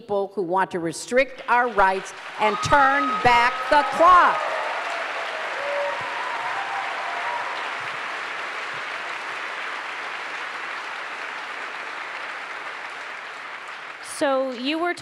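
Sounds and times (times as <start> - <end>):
audience applauding: 1.4 - 15.0.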